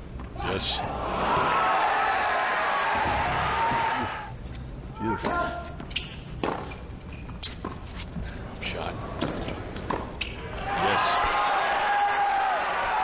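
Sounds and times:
tennis ball bouncing and struck: 5.2s - 7.8s.

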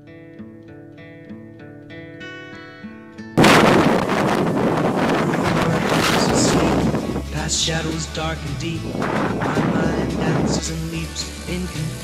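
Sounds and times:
quiet acoustic guitar music: 0.0s - 12.0s
wind buffeting microphone: 3.4s - 7.9s, 8.6s - 11.0s.

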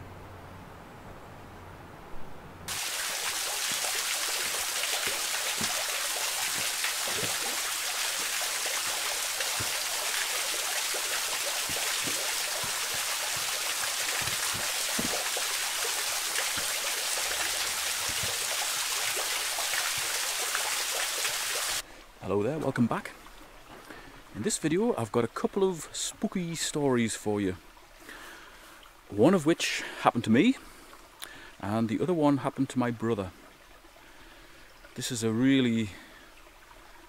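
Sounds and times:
small waterfall splashing: 2.7s - 25.1s
water splashes and drips: 2.7s - 37.0s.

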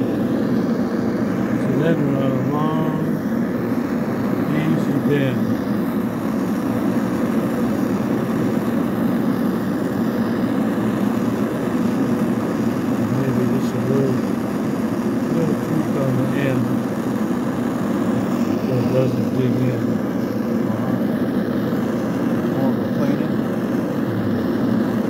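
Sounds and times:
gas torch hissing: 0.0s - 25.0s
faint voices: 18.5s - 21.3s.

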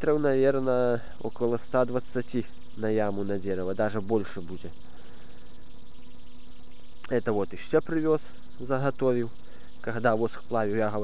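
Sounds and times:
background hiss: 0.0s - 11.0s
low hum: 0.0s - 11.0s.

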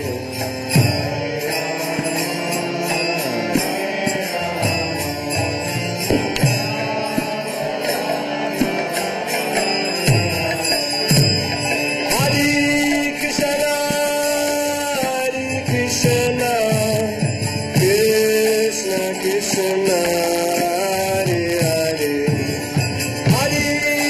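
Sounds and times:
jingling hand cymbals: 0.0s - 24.0s
voices chanting: 0.7s - 14.6s.

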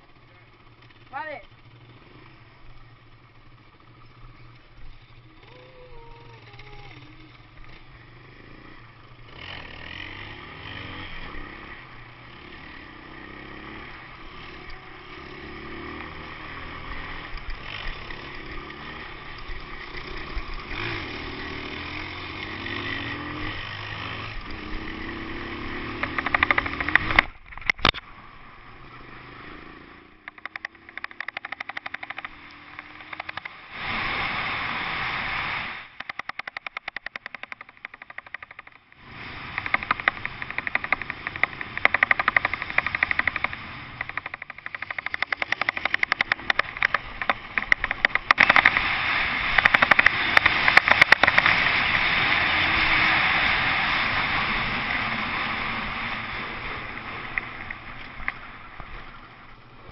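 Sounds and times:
motorcycle engine running: 0.0s - 59.9s
rapid rattling clicks: 26.0s - 28.0s, 30.2s - 33.6s, 35.9s - 48.9s, 49.5s - 51.6s.

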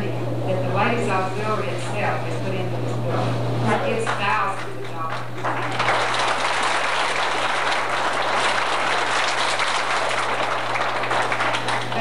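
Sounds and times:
tape recording hum: 0.0s - 12.0s
audience applauding: 4.0s - 12.0s.

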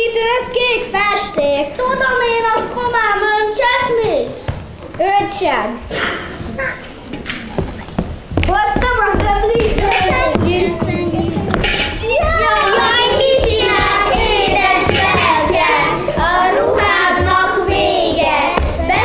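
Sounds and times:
sharp knocks: 8.0s - 16.3s
young children singing together: 8.6s - 19.0s.

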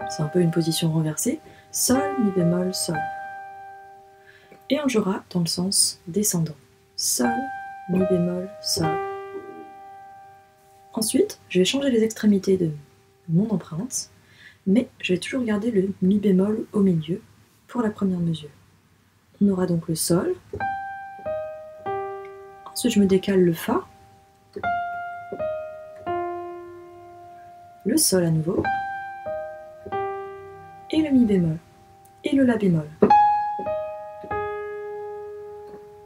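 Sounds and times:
piano notes ringing: 0.0s - 14.1s, 20.1s - 36.0s.

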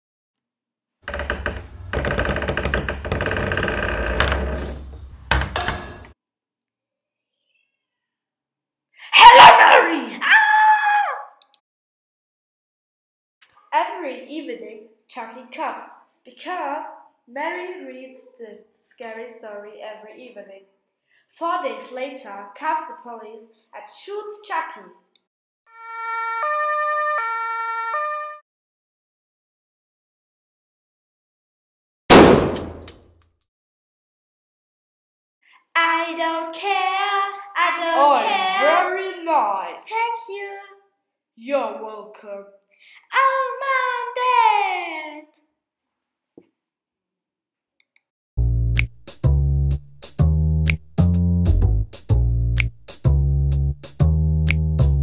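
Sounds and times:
door creaking: 1.0s - 6.2s
two-tone police siren: 25.8s - 28.4s.

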